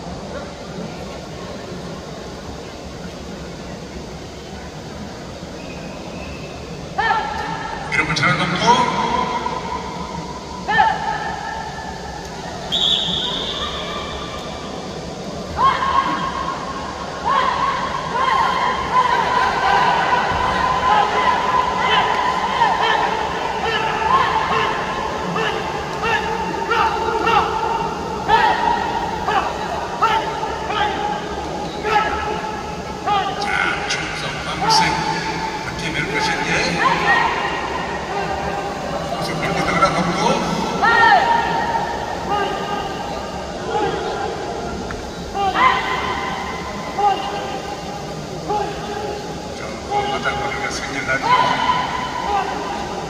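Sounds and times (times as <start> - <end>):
voice calling over loudspeakers: 6.9 - 12.0, 17.2 - 44.6.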